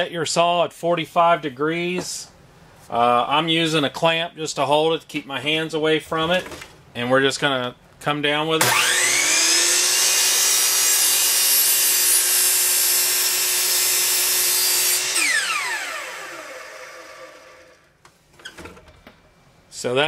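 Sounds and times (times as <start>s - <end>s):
miter saw cutting wood: 8.6s - 17.8s
saw motor winding down: 8.6s - 17.9s.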